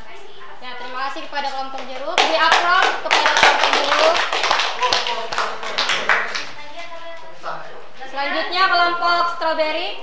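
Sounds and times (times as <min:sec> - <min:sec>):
small group clapping: 0:01.5 - 0:06.9.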